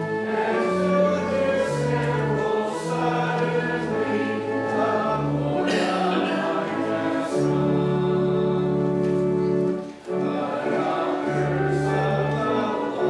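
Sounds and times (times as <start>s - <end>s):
congregation singing a hymn: 0.0s - 13.0s
organ sustained chords: 0.0s - 13.0s.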